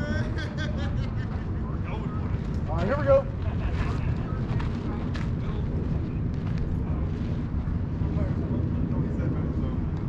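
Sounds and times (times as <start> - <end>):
faint voices: 0.0 - 10.0
wind buffeting microphone: 0.0 - 10.0.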